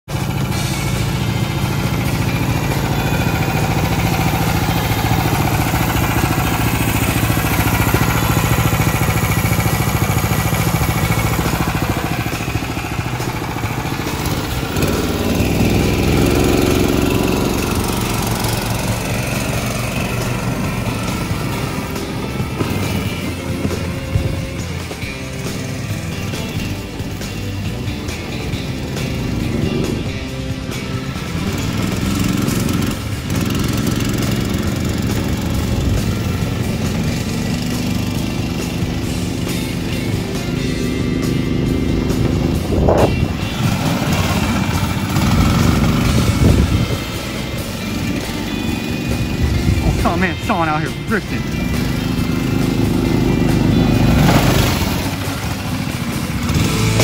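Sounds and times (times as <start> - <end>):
single-cylinder engine running: 0.0 - 57.0
background music: 0.1 - 57.0.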